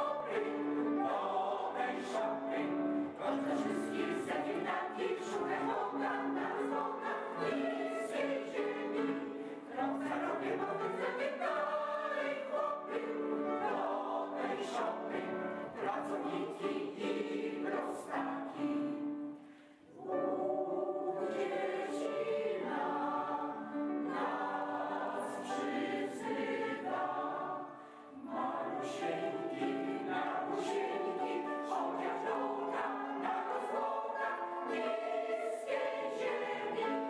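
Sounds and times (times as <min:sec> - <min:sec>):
mixed choir singing: 0:00.0 - 0:37.0.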